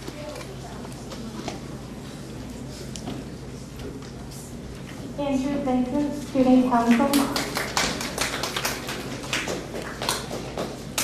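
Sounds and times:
audience applause: 7.3s - 11.0s.

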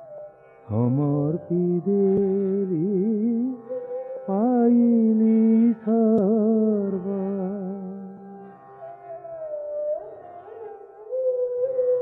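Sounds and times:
man singing devotional song: 0.7s - 8.2s.

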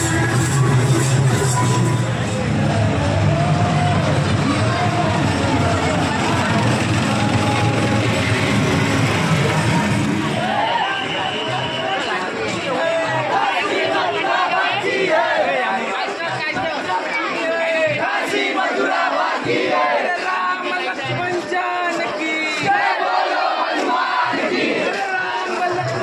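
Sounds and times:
large crowd shouting: 0.0s - 26.0s.

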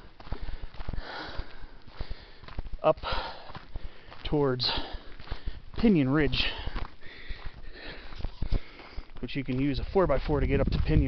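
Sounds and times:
person breathing hard: 0.0s - 5.7s, 6.3s - 9.2s
footsteps on gravel: 0.0s - 11.0s.

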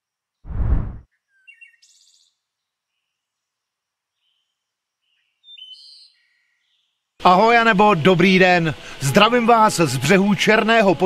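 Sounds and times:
deep whoosh: 0.5s - 1.0s.

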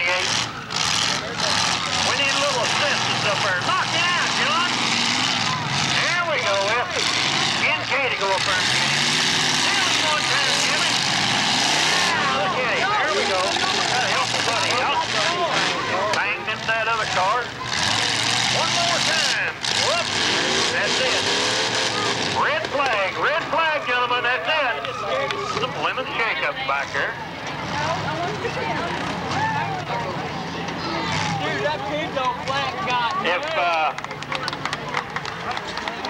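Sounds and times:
people talking: 0.0s - 11.1s, 11.8s - 36.0s
car engines revving: 0.0s - 36.0s.

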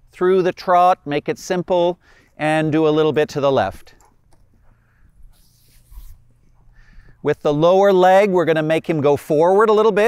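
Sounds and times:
hooves thudding on sand: 2.1s - 7.7s.

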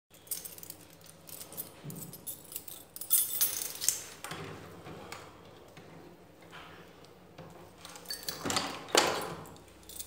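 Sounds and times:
keys jingling: 0.1s - 4.2s, 9.2s - 10.0s.

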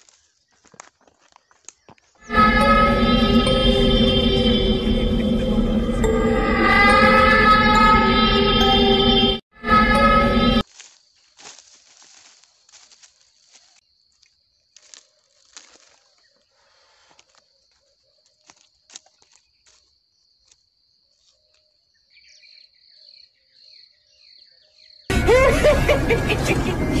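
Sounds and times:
high-pitched insect drone: 2.2s - 10.6s
background music: 2.3s - 10.6s, 25.1s - 27.0s.

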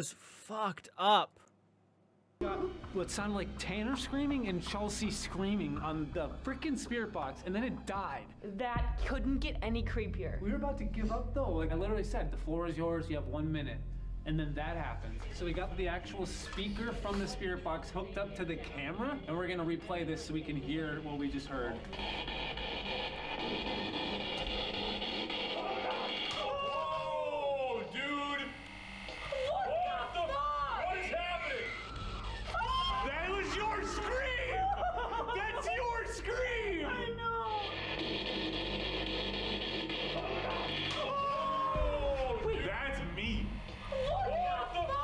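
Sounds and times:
radio static: 21.2s - 26.3s, 37.6s - 40.8s
wailing voice-like screams: 25.5s - 28.6s, 29.2s - 35.0s, 40.1s - 43.1s, 43.8s - 45.0s.

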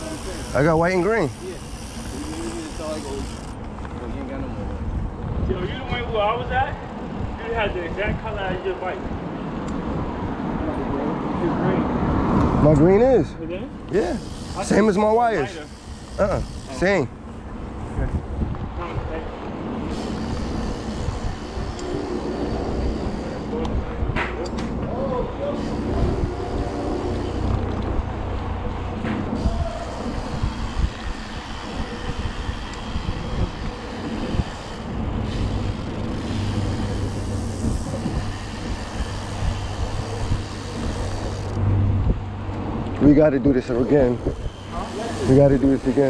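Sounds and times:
bike tyre noise: 0.0s - 10.6s, 13.8s - 46.0s
wind rumble: 3.3s - 13.2s, 16.4s - 45.9s
faint voices: 13.8s - 28.1s.

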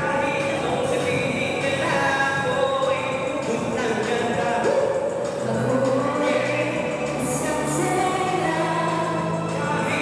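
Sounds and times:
amplified music: 0.0s - 10.0s
person singing into microphone: 0.0s - 10.0s.

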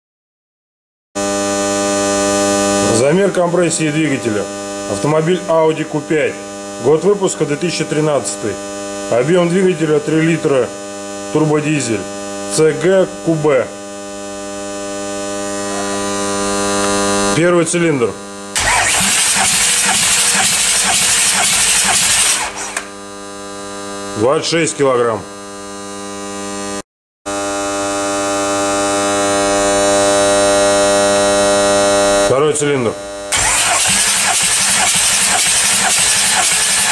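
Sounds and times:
engine cranked by starter: 18.6s - 23.0s, 33.3s - 36.9s.

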